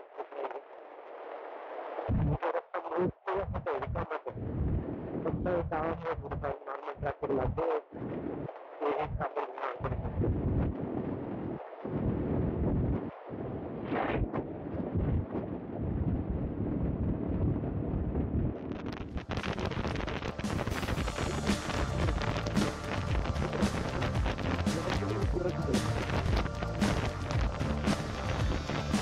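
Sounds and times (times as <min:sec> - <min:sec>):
wind rushing over microphone: 0:09.9 - 0:29.0.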